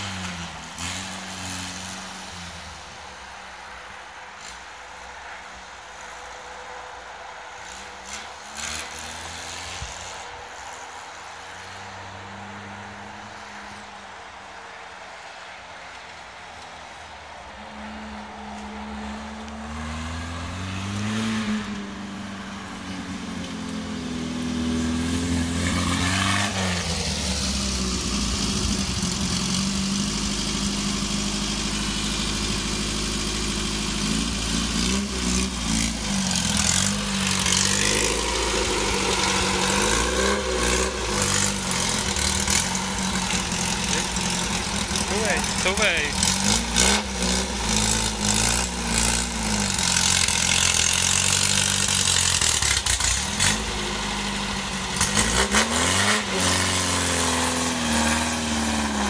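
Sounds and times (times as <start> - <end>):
buggy engine revving: 0.0 - 3.3, 7.6 - 14.0, 17.6 - 59.0.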